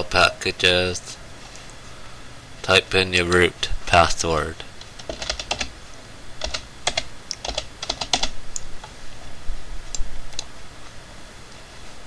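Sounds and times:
computer keyboard typing: 0:04.8 - 0:05.7, 0:06.4 - 0:08.4.

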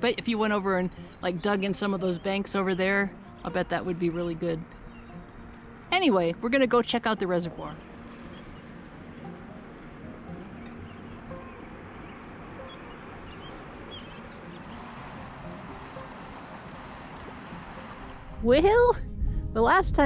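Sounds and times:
river running over gravel: 0:11.1 - 0:18.8.

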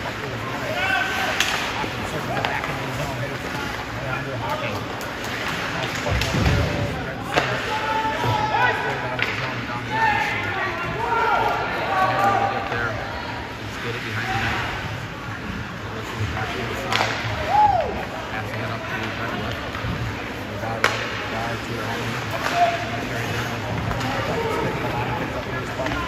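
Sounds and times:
hockey sticks and puck clacking: 0:00.0 - 0:12.8, 0:16.0 - 0:26.0.

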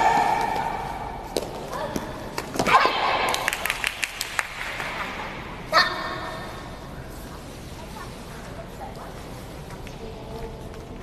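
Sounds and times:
players shouting in echoing hall: 0:00.0 - 0:03.7
hand claps: 0:03.3 - 0:05.1.

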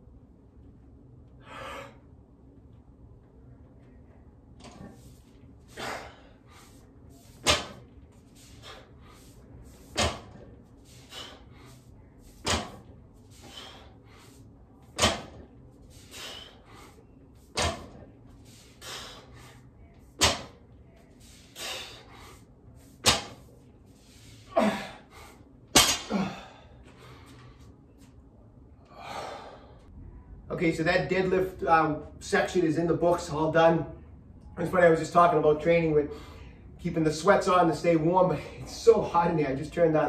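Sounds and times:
hard breaths: 0:01.3 - 0:02.2, 0:04.8 - 0:27.8, 0:28.8 - 0:30.0, 0:36.0 - 0:36.8
barbell thudding on floor mat: 0:07.4 - 0:07.9, 0:09.8 - 0:10.5, 0:12.4 - 0:12.9, 0:14.9 - 0:15.5, 0:17.5 - 0:18.0, 0:20.2 - 0:20.6, 0:23.0 - 0:23.5.

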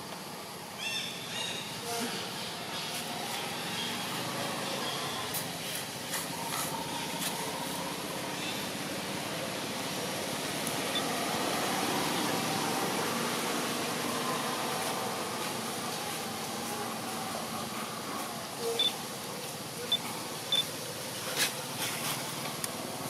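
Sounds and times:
faint distant voices: 0:00.0 - 0:23.0
outdoor background noise: 0:00.0 - 0:23.0.

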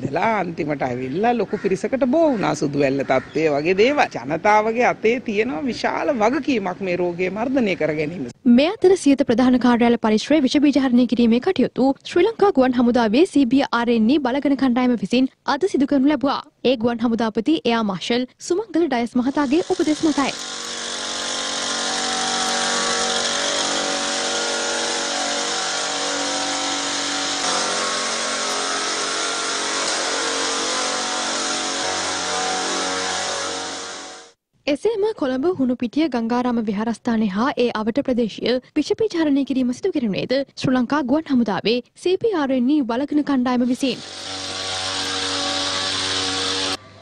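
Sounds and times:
small petrol engine running: 0:19.2 - 0:34.3, 0:43.9 - 0:47.0
small motor whining: 0:19.2 - 0:34.4, 0:43.8 - 0:47.0.

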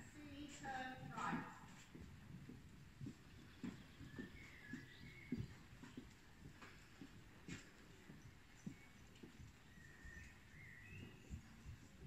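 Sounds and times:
horse hooves trotting on soft ground: 0:00.0 - 0:12.0.

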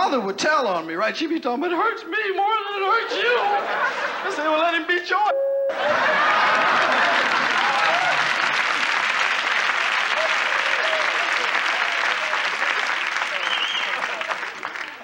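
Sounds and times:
laughter: 0:03.0 - 0:04.6, 0:05.7 - 0:08.4, 0:13.7 - 0:14.7
audience applauding: 0:05.8 - 0:15.0.

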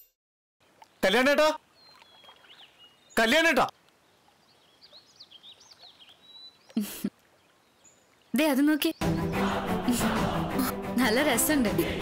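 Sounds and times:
birds chirping: 0:00.6 - 0:10.0.

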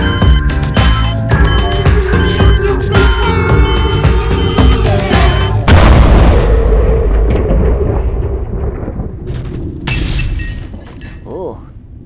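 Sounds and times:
music: 0:00.0 - 0:06.0
explosion boom with long rumble: 0:05.7 - 0:11.0.

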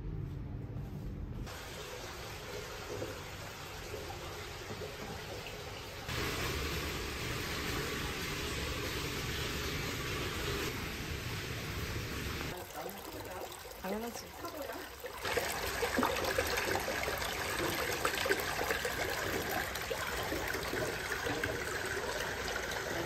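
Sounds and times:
water pouring and splashing: 0:01.5 - 0:23.0.

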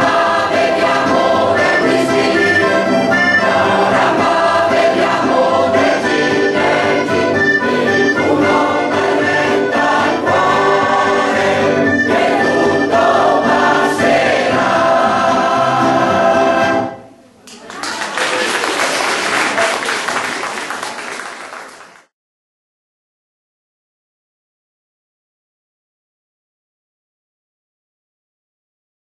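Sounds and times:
mixed choir singing: 0:00.0 - 0:17.0.

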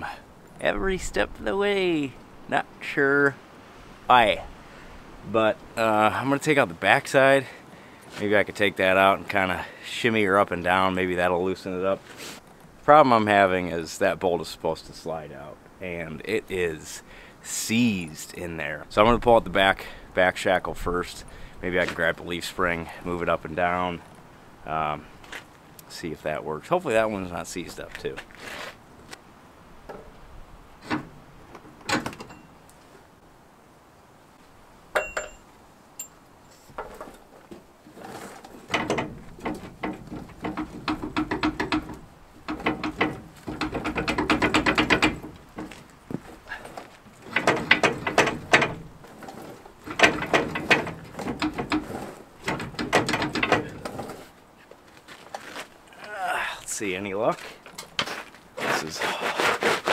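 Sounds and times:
scattered knocks and clicks: 0:38.4 - 0:46.3, 0:47.2 - 0:54.3.

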